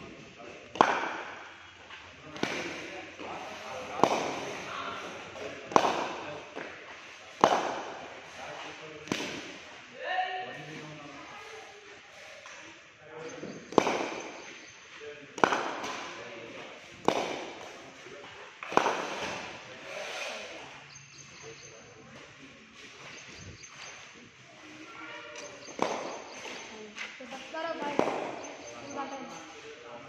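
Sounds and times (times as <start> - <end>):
cricket bat knocking ball: 0.7 - 1.4, 3.9 - 4.6, 5.7 - 6.7, 7.4 - 8.0, 13.6 - 14.5, 15.4 - 16.2, 17.0 - 17.7, 18.6 - 19.5, 25.7 - 26.6, 27.8 - 28.7.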